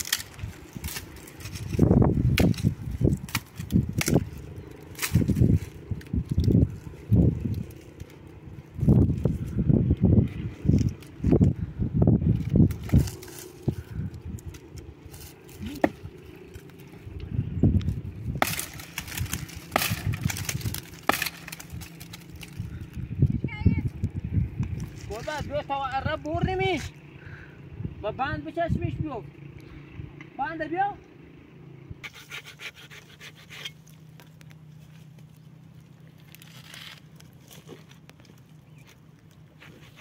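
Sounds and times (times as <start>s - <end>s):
branches cracking: 0.0s - 27.0s, 32.1s - 40.0s
twigs rustling: 0.0s - 27.1s, 32.0s - 40.0s.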